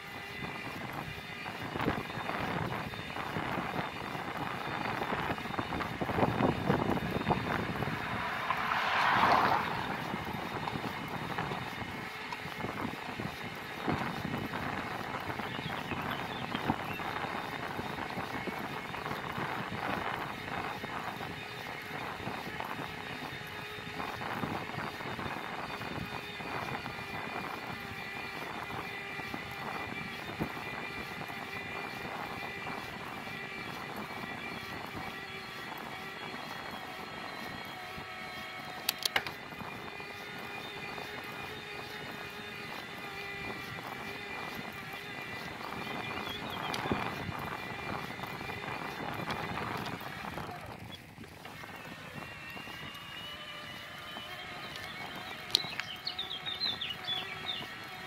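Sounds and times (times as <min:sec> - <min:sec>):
road and tyre noise: 0:00.0 - 0:58.0
wind buffeting microphone: 0:00.0 - 0:58.0
faint high whine: 0:01.6 - 0:12.3.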